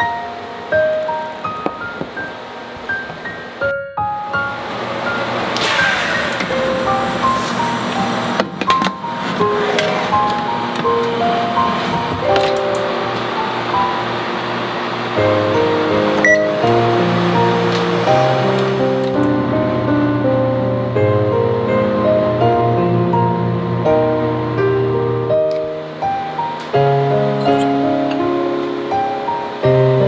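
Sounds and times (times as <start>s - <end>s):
gentle instrumental music: 0.0s - 30.0s.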